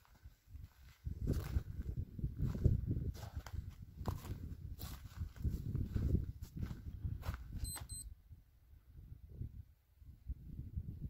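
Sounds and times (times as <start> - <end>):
short high electronic beeps: 7.6 - 8.1.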